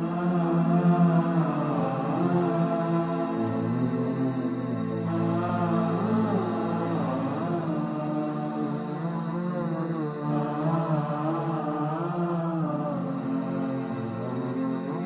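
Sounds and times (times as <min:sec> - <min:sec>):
person chanting melody: 0:00.0 - 0:15.0
steady low drone: 0:00.0 - 0:15.0.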